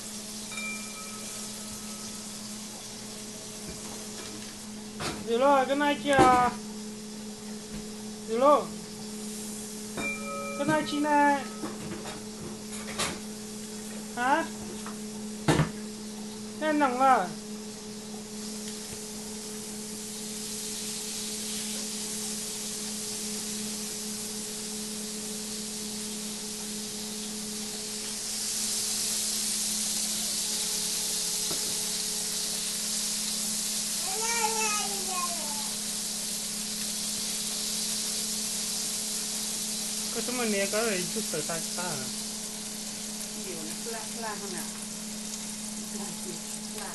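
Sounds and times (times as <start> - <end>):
meat sizzling on a griddle: 0.0 - 46.9
low hum and faint hiss: 31.9 - 46.9.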